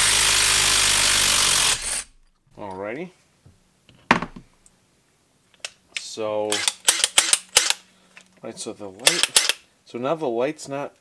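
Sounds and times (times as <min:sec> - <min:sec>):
impact wrench clicks and knocks: 0:06.5 - 0:07.9, 0:09.0 - 0:09.7.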